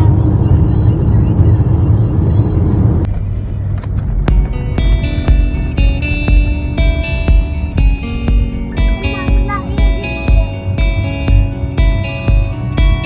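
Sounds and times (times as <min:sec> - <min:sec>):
car road noise: 0:00.0 - 0:13.0
music with ringing notes: 0:03.1 - 0:13.0.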